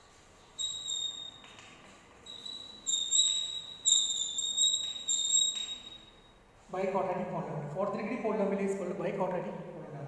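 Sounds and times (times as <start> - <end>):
chalk squeaking on chalkboard: 0.5 - 1.5, 2.3 - 6.1.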